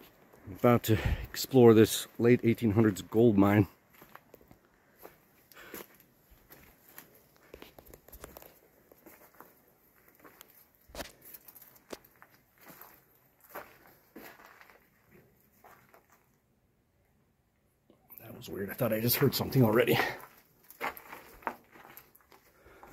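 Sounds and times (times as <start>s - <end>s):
footsteps on dry leaves and gravel: 2.0s - 16.2s, 19.0s - 22.9s.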